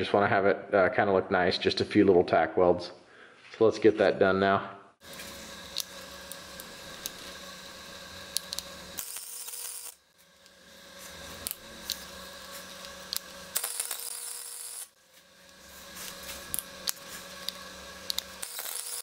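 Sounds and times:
steady welder hum: 0:05.0 - 0:19.0
welding arc crackle: 0:05.0 - 0:19.0.

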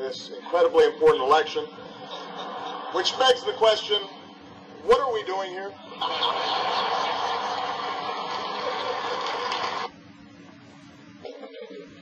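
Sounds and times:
audience laughter through speakers: 0:01.7 - 0:03.6, 0:05.9 - 0:09.9.

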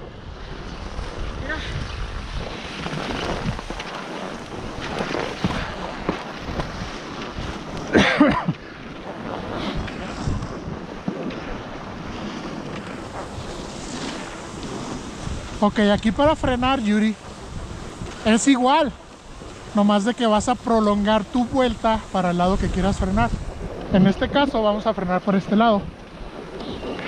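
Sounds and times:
skis scraping over snow: 0:00.0 - 0:27.0
wind buffeting microphone: 0:00.0 - 0:27.0.

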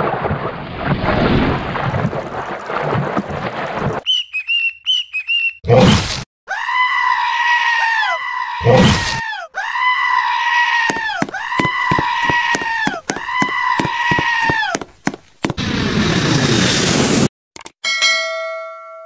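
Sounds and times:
high wailing scream: 0:06.5 - 0:14.9.

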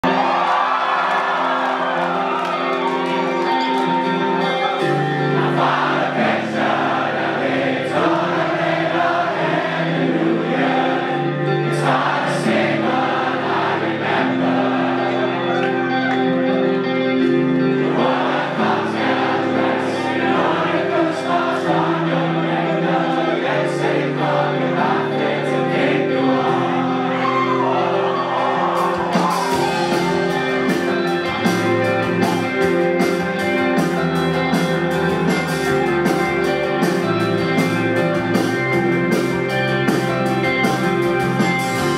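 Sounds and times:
crowd cheering and whooping: 0:00.0 - 0:06.2, 0:12.0 - 0:16.9, 0:26.5 - 0:37.4
electric guitars ringing chords: 0:00.9 - 0:41.9.

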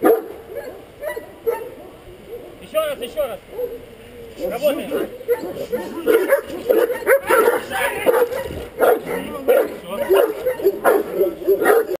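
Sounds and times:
dog barking: 0:00.0 - 0:02.6, 0:03.5 - 0:12.0.

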